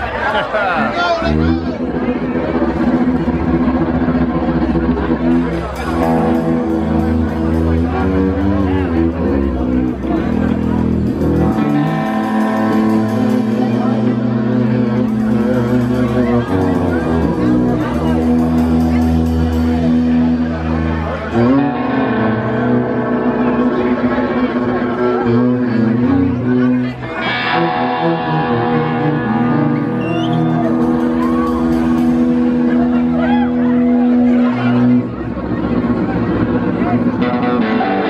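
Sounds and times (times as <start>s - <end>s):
electric guitar held notes: 0.8s - 38.0s
bowed upright bass: 1.2s - 38.0s.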